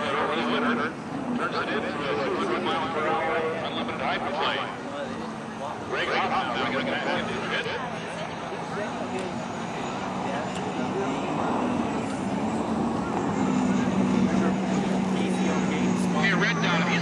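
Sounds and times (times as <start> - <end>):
turbine boat engine roaring: 0.0 - 17.0.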